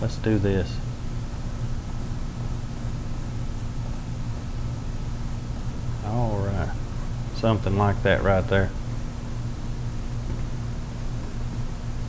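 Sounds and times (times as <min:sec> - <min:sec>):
low hum with hiss: 0:00.0 - 0:12.0.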